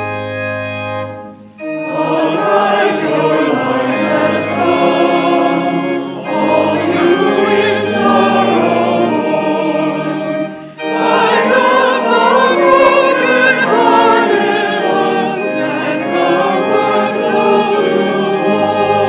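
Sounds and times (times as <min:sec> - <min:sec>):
congregation and choir singing hymn: 0:00.0 - 0:19.0
organ: 0:00.0 - 0:19.0.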